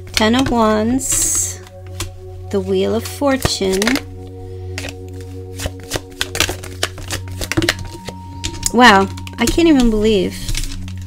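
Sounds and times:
soft background music: 0:00.0 - 0:11.0
cards clicking and slapping: 0:04.8 - 0:11.0.

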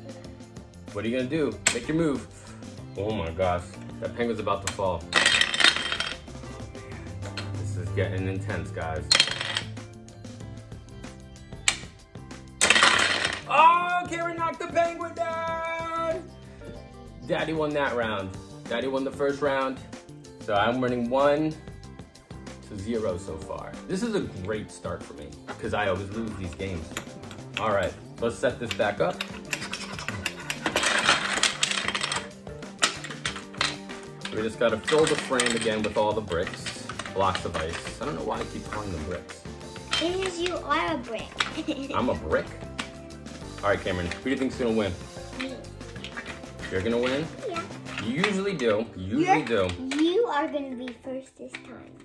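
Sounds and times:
background music: 0:00.0 - 0:52.0
plastic blocks clattering: 0:04.7 - 0:06.3, 0:12.6 - 0:13.5, 0:28.6 - 0:39.2, 0:42.8 - 0:48.7
plastic blocks clicking: 0:28.6 - 0:38.6.

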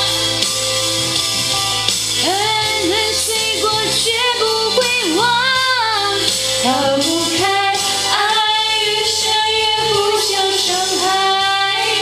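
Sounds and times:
backing track: 0:00.0 - 0:12.0
woman singing pop ballad: 0:02.1 - 0:12.0.

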